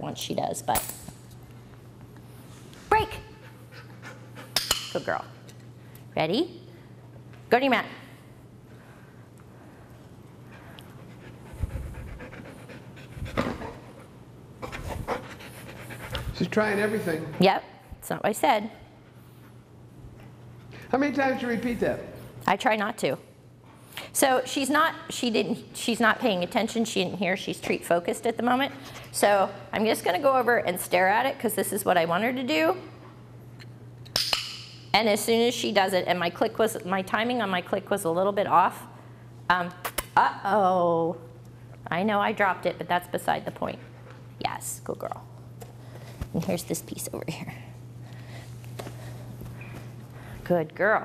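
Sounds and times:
dog panting rapidly: 3.4 - 4.6, 10.5 - 17.7, 43.3 - 44.4.

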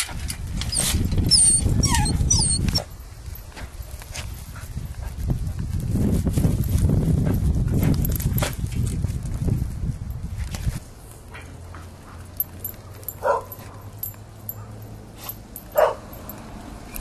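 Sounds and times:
dog yelping and whining: 0.7 - 2.9.

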